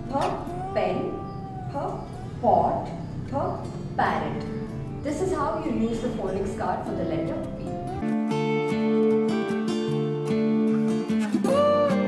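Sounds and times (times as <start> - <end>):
woman speaking slowly: 0.0 - 7.4.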